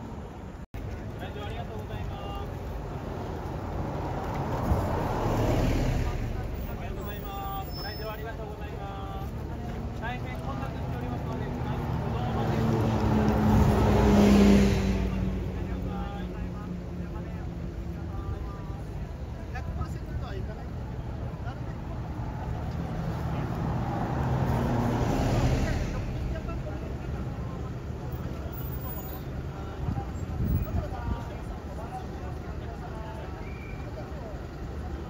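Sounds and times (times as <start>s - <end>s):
buses passing close: 0.0s - 19.4s, 21.1s - 30.6s.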